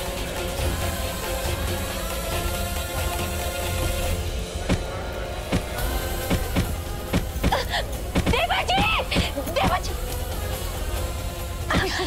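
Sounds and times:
dramatic sustained music: 0.0 - 12.0
low drone: 0.0 - 12.0.

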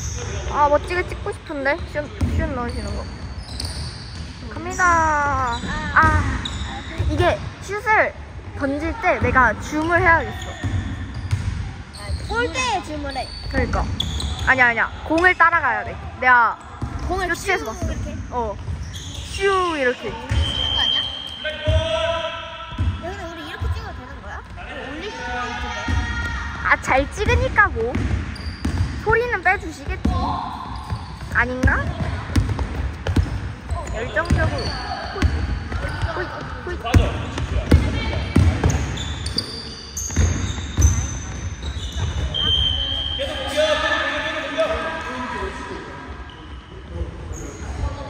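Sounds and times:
sneakers squeaking on floor: 0.0 - 48.0
basketball bouncing on wooden floor: 2.1 - 2.8, 25.9 - 30.2, 30.8 - 39.0, 40.0 - 42.3.

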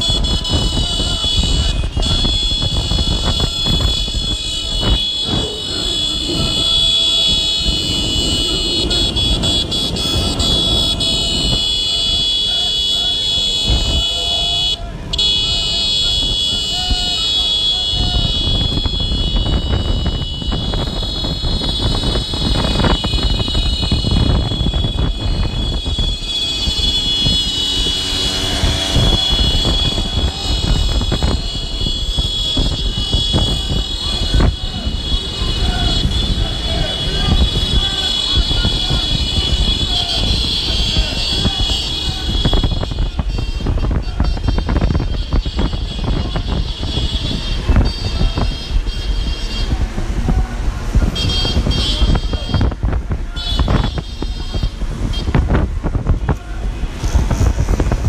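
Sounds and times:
street noise with voices: 0.0 - 58.0.

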